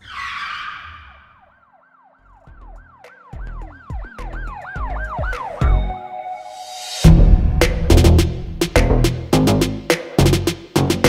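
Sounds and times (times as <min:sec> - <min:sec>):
swooping siren-like tones: 0:00.0 - 0:07.1
low pulsing beat: 0:02.5 - 0:05.9, 0:07.0 - 0:11.0
whoosh: 0:06.6 - 0:09.3.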